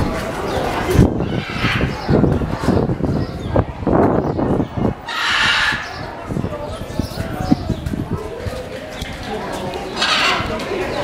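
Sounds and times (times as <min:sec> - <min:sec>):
crowd chatter: 0:00.0 - 0:11.0
macaws squawking: 0:05.0 - 0:06.1, 0:09.9 - 0:10.5.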